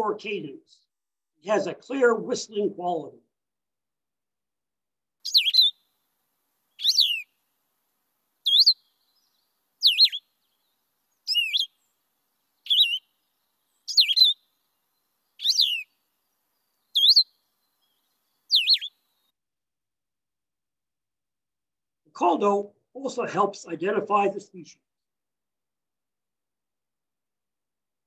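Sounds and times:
bird singing whistled phrases: 5.3 - 5.8, 6.8 - 7.3, 8.5 - 8.8, 9.8 - 10.3, 11.3 - 11.7, 12.6 - 13.0, 13.9 - 14.4, 15.4 - 15.9, 16.9 - 17.3, 18.5 - 18.9.

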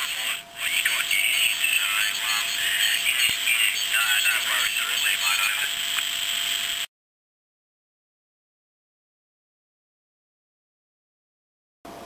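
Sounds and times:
thin garbled radio voices: 0.0 - 6.8.

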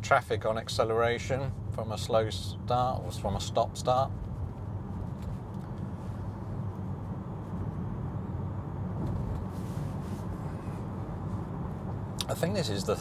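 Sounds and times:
road and tyre rumble: 0.0 - 13.0.

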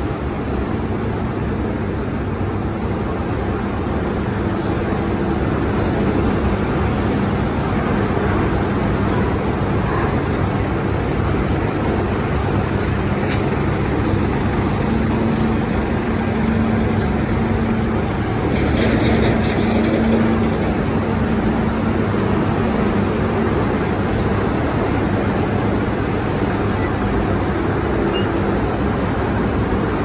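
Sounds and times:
diesel tractor engines droning: 0.0 - 30.0
unloading machinery running: 0.0 - 30.0.

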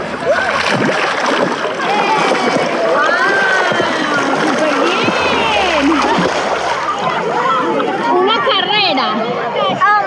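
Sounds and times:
high gliding voices: 4.0 - 8.9.

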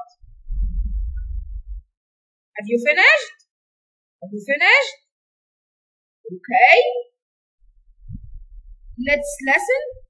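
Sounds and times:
low muffled rumble: 0.2 - 1.9, 7.6 - 10.0.

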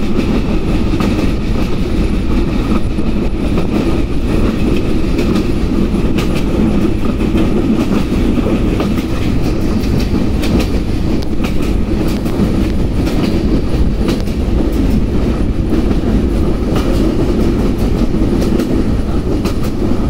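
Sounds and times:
train carriage rumble: 0.0 - 20.0.

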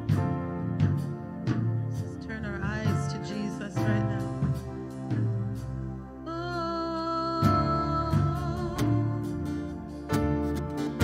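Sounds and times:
bass: 0.0 - 11.0
guitar: 0.0 - 11.0
keyboard: 0.0 - 11.0.

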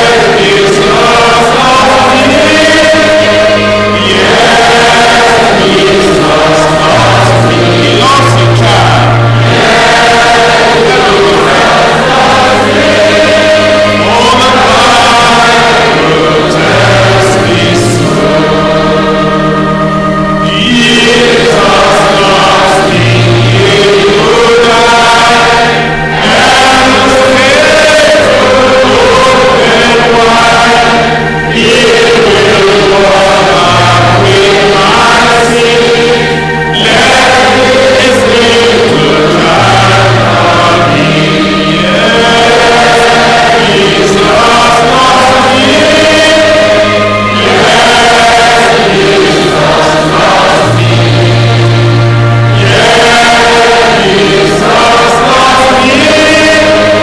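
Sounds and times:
choir singing a hymn: 0.0 - 57.0
low sustained notes: 0.0 - 57.0.

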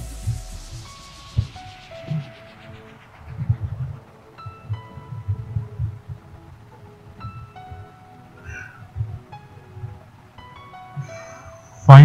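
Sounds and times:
melodic notes over pulsing beat: 0.0 - 12.0.

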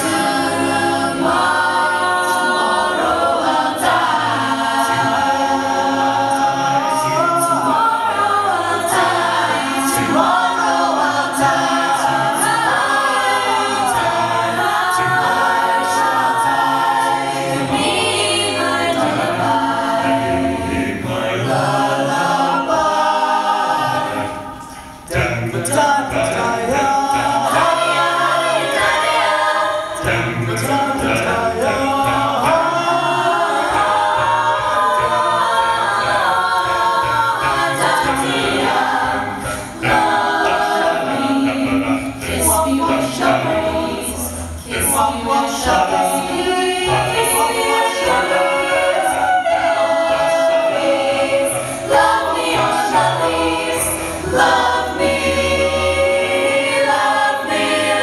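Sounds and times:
a cappella group singing: 0.0 - 58.0.

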